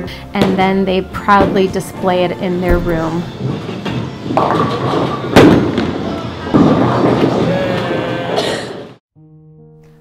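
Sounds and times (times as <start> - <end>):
bowling pins crashing: 2.7 - 7.5
bowling alley voices: 4.4 - 9.0.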